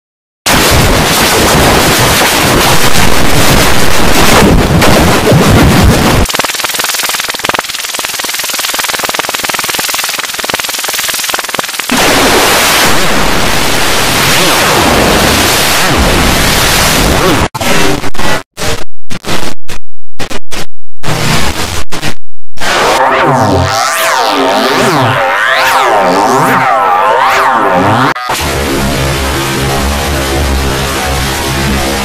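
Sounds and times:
distorted electronic crackle: 0.5s - 32.0s.

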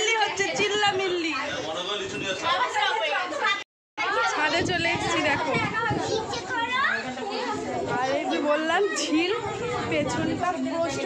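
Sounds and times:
group of people chattering: 0.0s - 11.0s.

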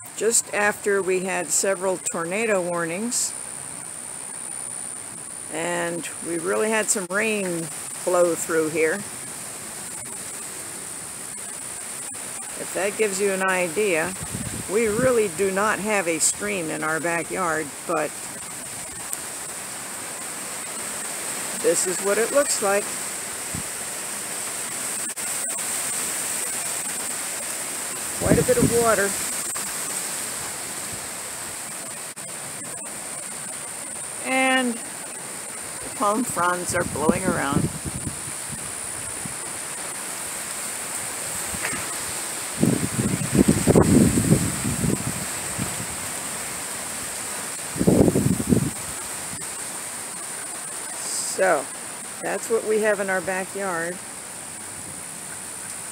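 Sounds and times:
rain: 0.0s - 55.9s
storm water rushing: 0.0s - 55.9s
wind through palm fronds: 0.0s - 55.9s
low rumbling wind gusts: 12.6s - 20.6s, 26.0s - 31.7s, 35.6s - 49.6s
thin high hiss: 37.6s - 52.3s.

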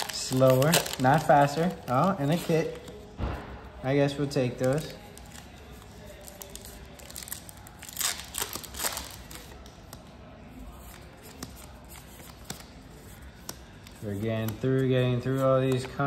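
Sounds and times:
cards rustling swishes: 0.0s - 3.2s.

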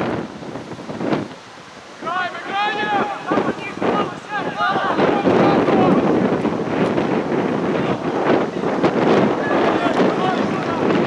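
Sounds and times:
wind buffeting microphone: 0.0s - 11.0s
voices calling out: 1.3s - 11.0s.

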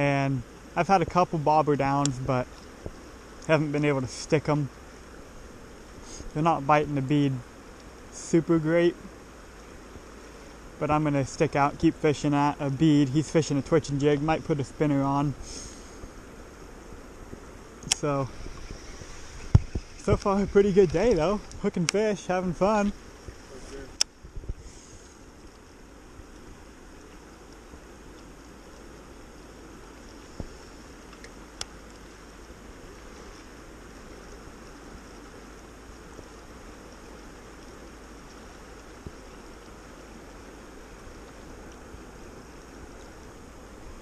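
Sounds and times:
faint clicks: 7.7s - 8.1s, 17.3s - 22.1s, 22.8s - 32.6s, 33.3s - 43.4s
river current rushing: 8.1s - 44.0s.

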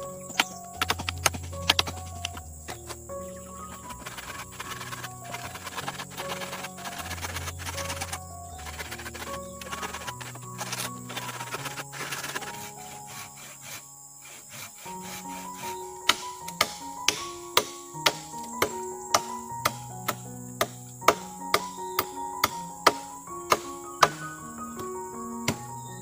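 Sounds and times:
background music: 0.0s - 26.0s
handsaw rasping through wood: 3.8s - 17.7s
machete chopping wooden post: 16.1s - 21.7s, 22.4s - 24.2s.

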